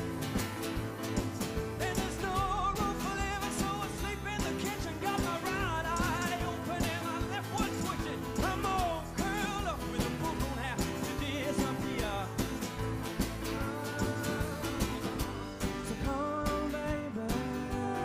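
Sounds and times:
tambourine: 0.0 - 16.8
acoustic guitar: 0.0 - 18.0
drum kit: 0.0 - 18.0
keyboard: 0.0 - 18.0.

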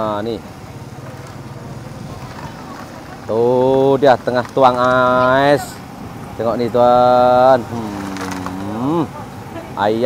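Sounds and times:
low hum of general noise: 0.0 - 10.0.

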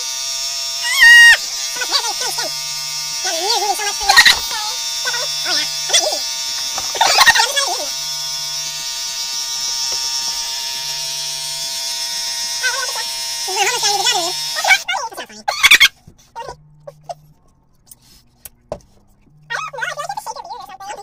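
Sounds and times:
electric clipper buzzing: 0.0 - 15.0
high sped-up voices chattering: 19.4 - 21.0.

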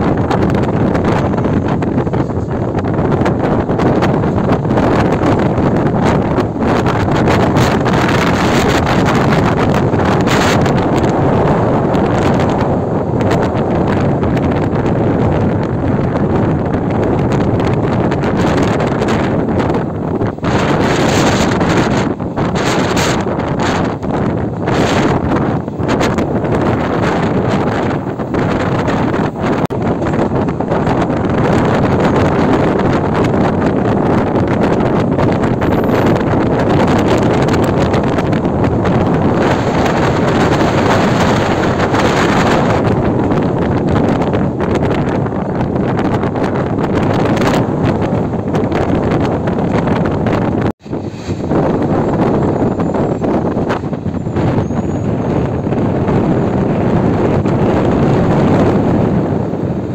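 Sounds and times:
train running on track: 0.0 - 59.9
wind buffeting microphone: 0.0 - 59.9.

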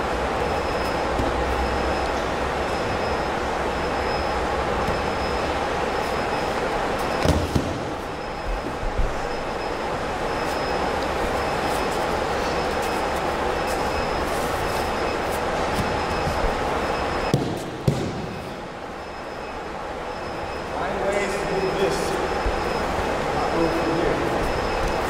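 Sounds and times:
steady rushing background noise: 0.0 - 25.0.

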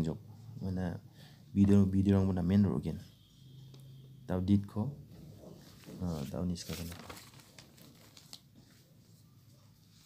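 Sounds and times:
person speaking: 4.3 - 7.2
crinkly handling rustle: 5.5 - 9.2.

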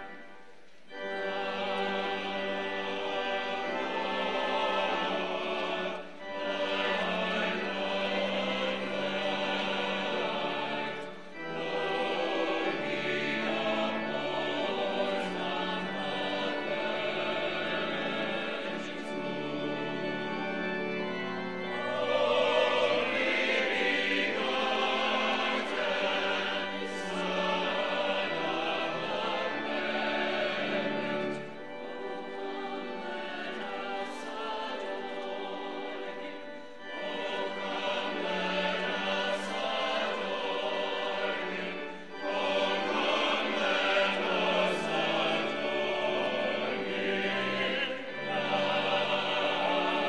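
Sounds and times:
choir and congregation singing: 0.0 - 50.0.

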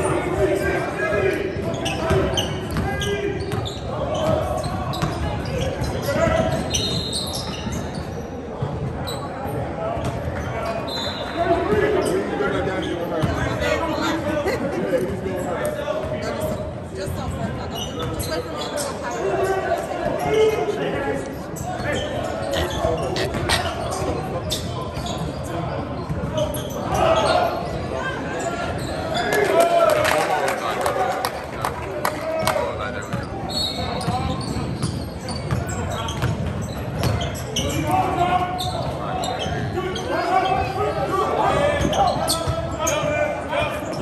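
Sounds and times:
echoing voices in gym: 0.0 - 44.0.

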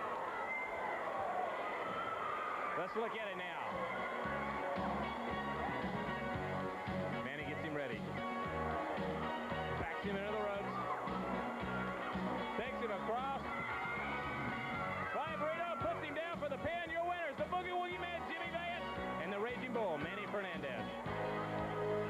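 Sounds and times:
rock music with singing: 3.9 - 16.7.

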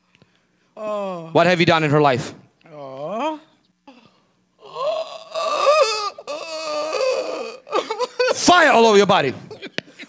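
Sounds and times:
woman wailing: 0.8 - 1.3, 2.7 - 8.5.

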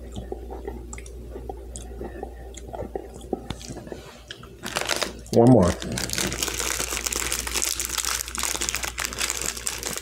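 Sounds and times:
plastic and foil wrapper crinkling: 4.6 - 10.0.

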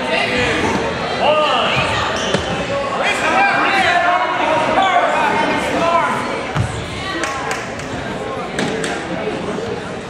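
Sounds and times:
voices shouting in a gym: 0.0 - 9.7.

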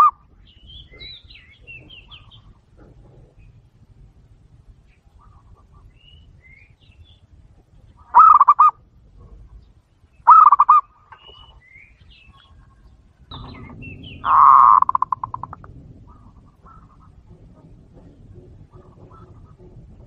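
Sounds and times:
dove cooing: 8.0 - 9.5, 10.3 - 10.8, 12.7 - 20.0.

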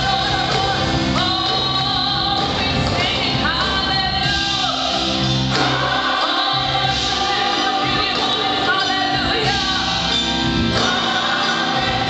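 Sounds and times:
group singing gospel: 0.0 - 12.0
instrumental accompaniment: 0.0 - 12.0.

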